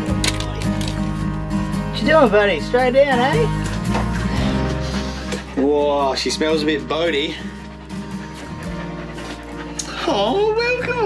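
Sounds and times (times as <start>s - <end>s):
background music with held notes: 0.0s - 11.0s
dog panting: 3.4s - 11.0s.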